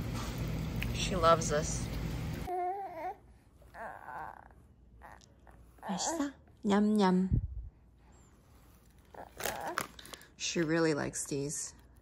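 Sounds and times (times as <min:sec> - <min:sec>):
snack pouch crinkling: 0:08.9 - 0:10.3.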